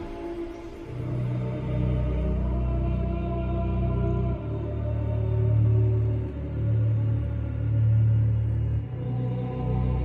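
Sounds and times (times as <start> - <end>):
dark slow music with deep bass: 0.0 - 10.0.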